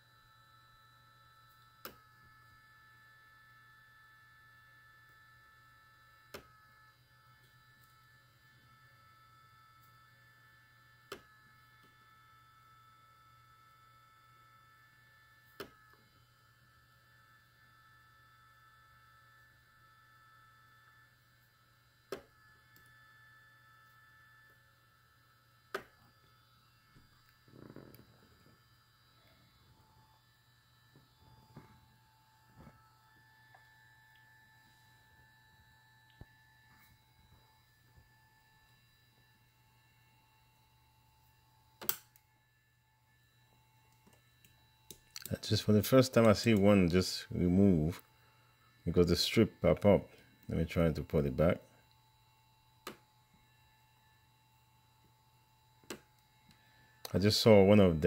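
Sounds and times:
cooling fan hum and whine: 0.0 - 58.0
spot welder sharp crack: 41.8 - 42.2.

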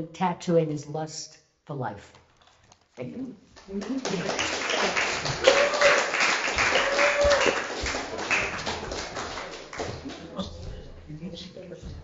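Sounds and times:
audience applauding: 3.7 - 10.3.

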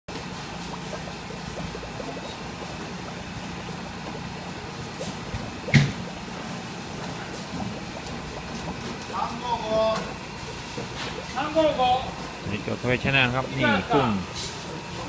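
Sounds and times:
water trickling in a tank: 0.1 - 14.9.

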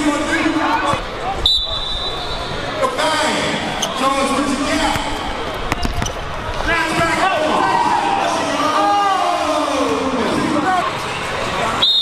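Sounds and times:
chatter of spectators: 0.0 - 12.0
basketball bouncing on gym floor: 4.8 - 6.2.

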